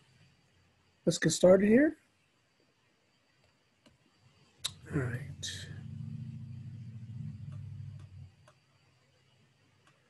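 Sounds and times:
faint low hum: 0:00.0 - 0:10.0
computer mouse clicks: 0:07.3 - 0:08.6.

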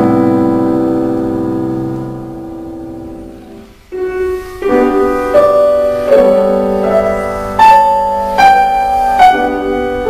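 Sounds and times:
grand piano chord ringing: 0:00.0 - 0:10.0.

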